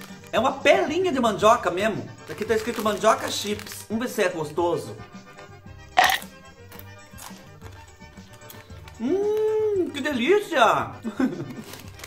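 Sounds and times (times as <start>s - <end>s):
background music: 0.0s - 12.0s
chewing crunches: 6.0s - 7.8s
crisp chip crunched in a bite: 6.0s - 9.5s.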